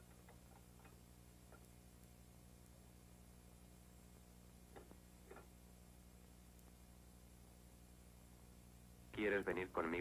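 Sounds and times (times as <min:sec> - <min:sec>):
faint irregular clicks: 0:00.0 - 0:02.8, 0:06.5 - 0:06.8
steady low hum: 0:00.0 - 0:10.0.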